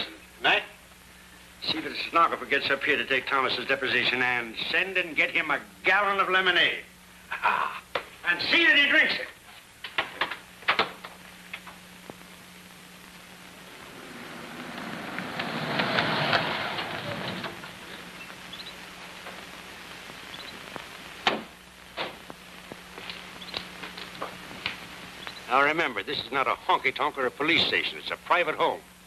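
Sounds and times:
faint steady hum: 0.0s - 29.0s
car driving up and stopping: 13.7s - 17.7s.

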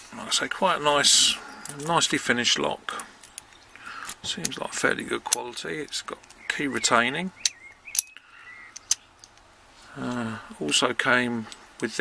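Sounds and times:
keys clinking against padlock: 7.4s - 9.4s.

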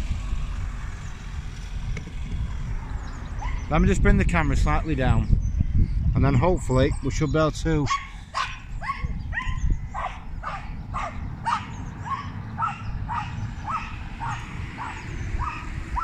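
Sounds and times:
dog whining and yipping: 3.4s - 3.7s, 7.9s - 16.0s.

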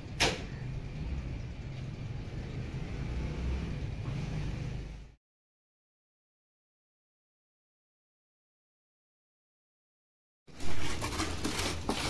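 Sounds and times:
low outdoor rumble: 0.0s - 5.2s.

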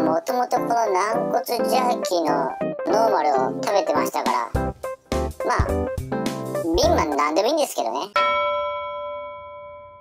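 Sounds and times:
person speaking: 0.0s - 8.2s
bell-like chime ringing: 8.2s - 10.0s.

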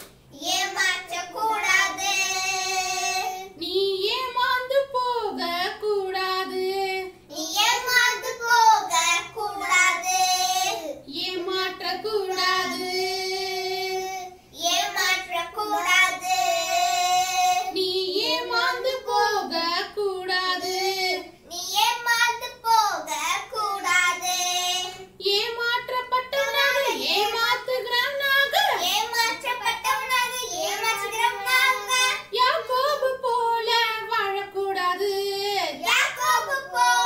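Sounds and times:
young children singing: 0.4s - 3.6s, 6.5s - 21.3s, 28.9s - 34.3s, 35.1s - 37.0s.

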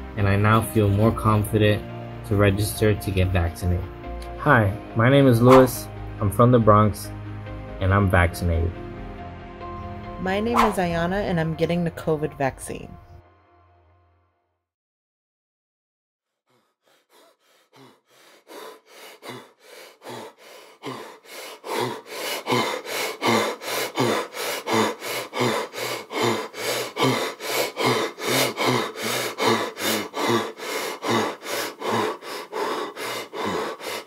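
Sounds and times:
person gasping for breath: 16.5s - 34.0s.

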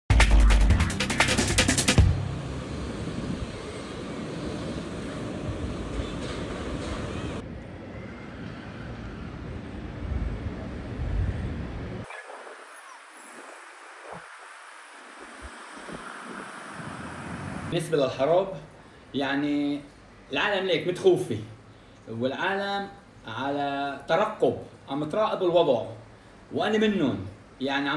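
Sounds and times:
distant street traffic: 1.8s - 22.1s
wind on microphone: 2.1s - 6.0s, 8.9s - 17.7s.

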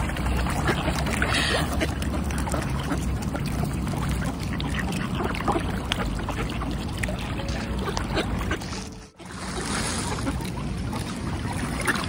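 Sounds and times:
swans and ducks paddling: 0.0s - 12.0s
water splashing and churning: 0.0s - 12.0s.

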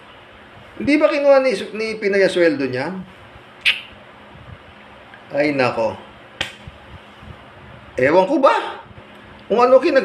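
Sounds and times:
low room hiss: 0.0s - 10.0s
sharp click: 3.6s - 4.0s, 6.4s - 6.7s.

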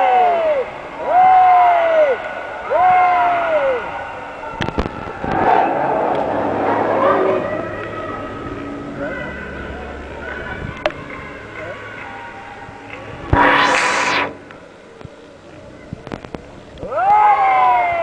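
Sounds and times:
crowd noise: 0.0s - 17.0s
sharp knock: 13.4s - 14.6s.

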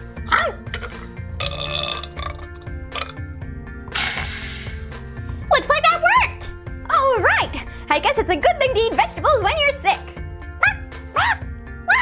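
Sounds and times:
background music: 0.0s - 12.0s
burping and retching: 0.5s - 4.7s.

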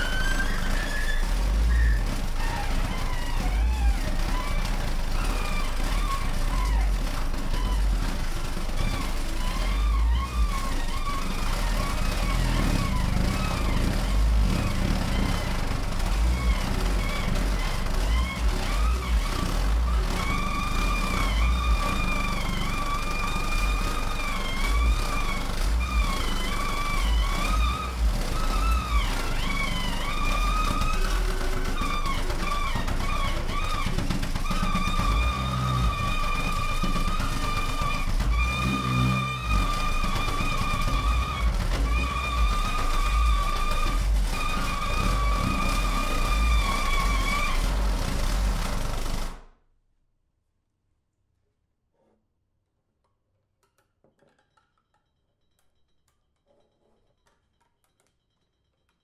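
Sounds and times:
low rumbling pulses: 0.0s - 49.2s.

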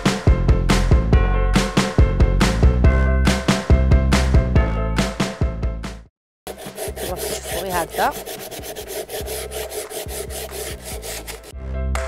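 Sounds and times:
sandpaper rasping on wood: 6.5s - 11.5s.

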